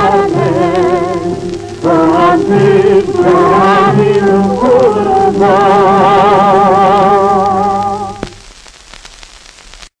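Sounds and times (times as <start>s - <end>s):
song with held vibrato note: 0.0s - 8.3s
record surface crackling: 0.0s - 10.0s.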